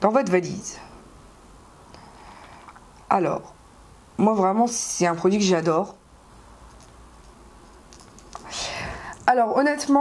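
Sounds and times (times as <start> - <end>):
soft breath in: 8.5 - 9.2.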